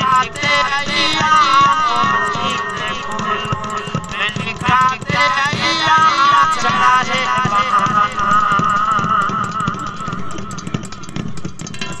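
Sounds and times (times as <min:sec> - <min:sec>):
fast percussive beat: 0:00.0 - 0:12.0.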